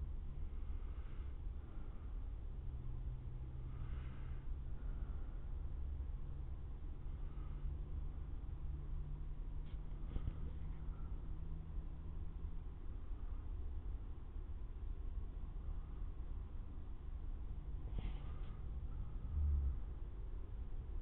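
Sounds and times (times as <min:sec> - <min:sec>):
faint hum: 0:00.0 - 0:21.0
low night background rumble: 0:00.0 - 0:21.0.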